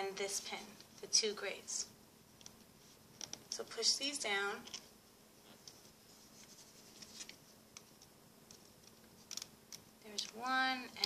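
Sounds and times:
rubber bands clicking on pins: 7.7s - 11.0s.

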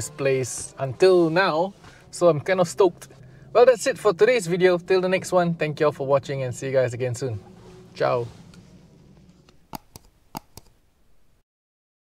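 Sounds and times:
short sharp clicks: 9.6s - 10.8s.

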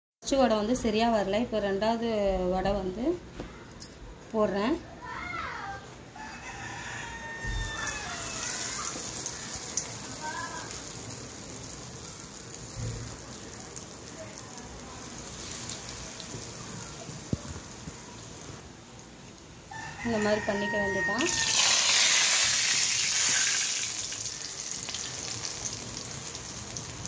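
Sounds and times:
batter sizzling in hot oil: 7.3s - 27.0s.

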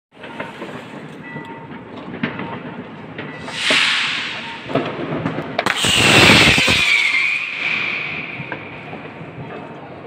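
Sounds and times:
fireworks crackling: 0.2s - 10.0s
fireworks popping: 0.2s - 10.0s
hissing whoosh: 3.4s - 9.1s.

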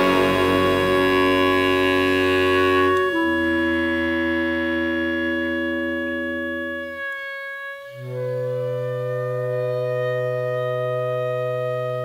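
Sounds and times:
long held musical chord: 0.0s - 4.4s.

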